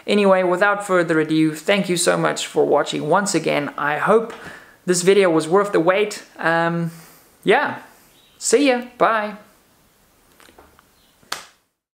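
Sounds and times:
sharp snap: 11.2 - 11.6.

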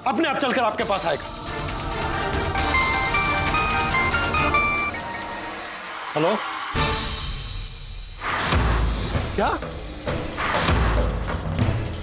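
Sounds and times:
mobile phone ringtone beeping: 2.6 - 5.5.

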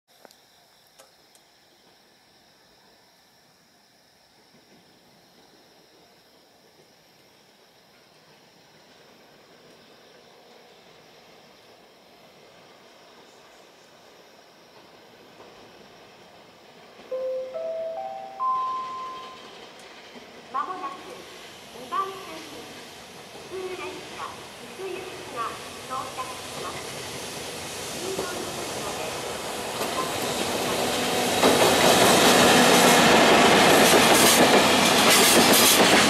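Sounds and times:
rising station chime: 17.1 - 19.7.

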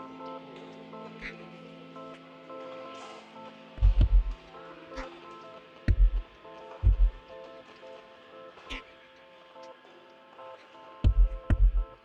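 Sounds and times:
soft sustained keys: 0.0 - 12.0
deep kick drum: 3.8 - 4.4, 5.9 - 7.2, 11.0 - 11.8.

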